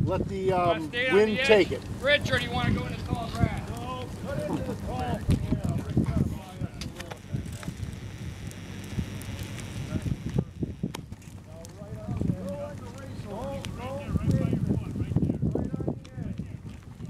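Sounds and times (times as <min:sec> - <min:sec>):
dry grass burning and crackling: 0:00.0 - 0:17.0
wind rumbling on microphone: 0:00.0 - 0:17.0
people talking indistinctly: 0:00.1 - 0:16.6.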